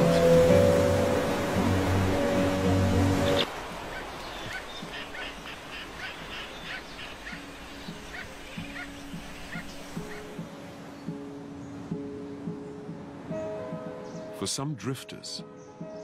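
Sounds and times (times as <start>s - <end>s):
seabirds calling: 0.0s - 16.0s.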